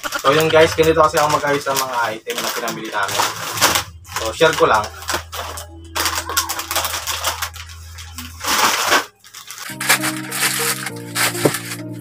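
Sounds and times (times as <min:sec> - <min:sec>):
plastic wrappers crinkling: 0:00.0 - 0:12.0
background music with held chords: 0:03.1 - 0:12.0.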